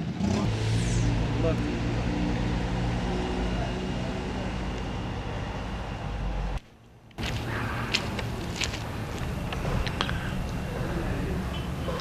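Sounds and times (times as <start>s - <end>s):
outdoor noise: 0.0s - 12.0s
vehicle engine humming: 0.0s - 12.0s.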